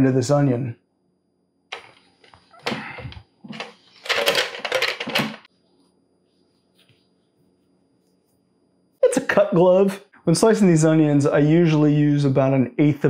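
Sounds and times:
plastic clacks and rattles: 0:02.6 - 0:05.5.

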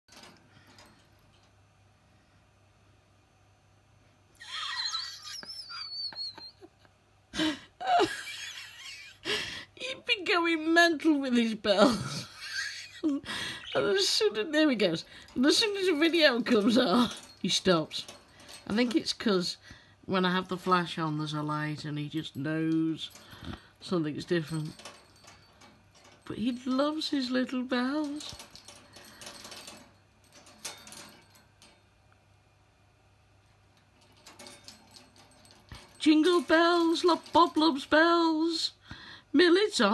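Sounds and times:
person's voice: 0:09.8 - 0:12.3, 0:13.1 - 0:24.8, 0:26.2 - 0:28.4, 0:36.0 - 0:39.9
small jingle bells jingling: 0:10.9 - 0:31.8, 0:33.8 - 0:38.7.

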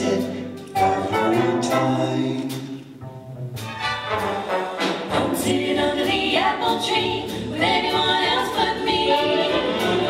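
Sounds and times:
big band playing: 0:00.0 - 0:10.0
women singing in harmony: 0:05.1 - 0:10.0.

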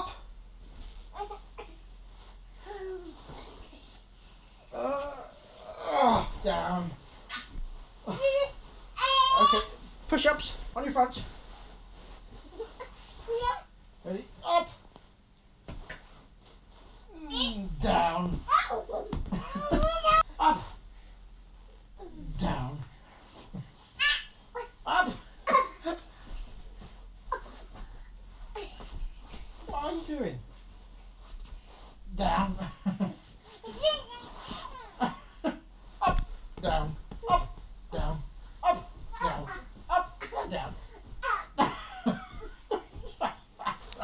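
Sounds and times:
adult voice: 0:04.7 - 0:07.0, 0:09.2 - 0:11.3, 0:13.4 - 0:14.8, 0:17.1 - 0:20.8, 0:22.0 - 0:23.0, 0:24.8 - 0:26.0, 0:29.6 - 0:30.5, 0:32.1 - 0:32.8, 0:36.0 - 0:40.9
toddler babbling and squealing: 0:09.0 - 0:09.8.

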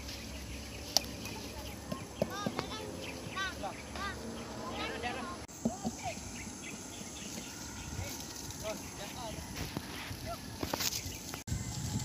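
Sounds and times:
voices calling out: 0:00.0 - 0:11.2.

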